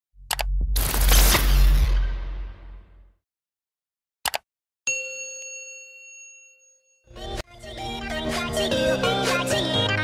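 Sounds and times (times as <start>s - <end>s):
notification bell ding: 4.9s - 7.1s.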